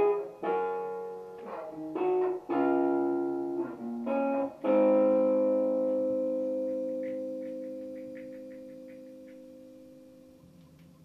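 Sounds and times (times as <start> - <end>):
electric guitar chord ringing: 0.0 - 10.6.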